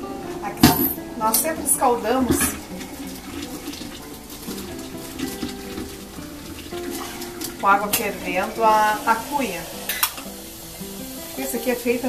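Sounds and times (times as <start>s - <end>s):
background music: 0.0s - 12.0s
water pouring from kettle: 0.0s - 12.0s.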